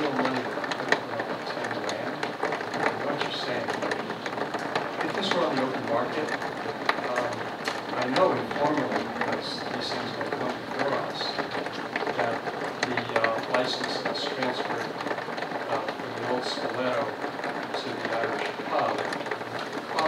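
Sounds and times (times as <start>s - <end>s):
indistinct voices talking: 0.0s - 15.0s.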